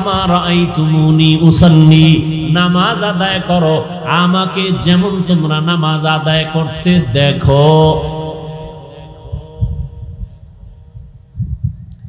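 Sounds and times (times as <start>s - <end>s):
man chanting with echo: 0.0s - 11.0s
faint low thumps: 9.2s - 12.0s.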